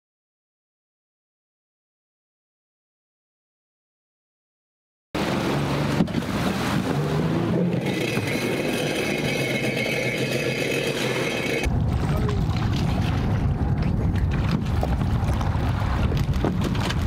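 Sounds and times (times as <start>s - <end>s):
personal watercraft engine running: 5.2s - 17.0s
water rushing: 5.2s - 17.0s.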